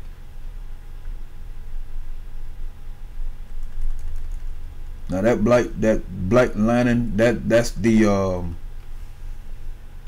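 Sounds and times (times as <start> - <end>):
computer keyboard clicks: 3.5 - 4.5.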